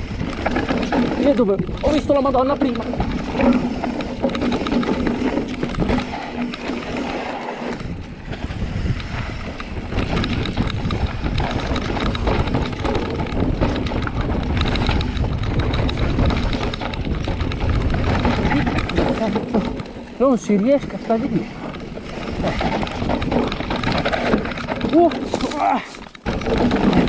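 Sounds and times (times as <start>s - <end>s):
bike rattling over bumps: 0.0s - 27.0s
tyres rolling over dirt: 0.0s - 27.0s
wind buffeting microphone: 0.0s - 27.0s.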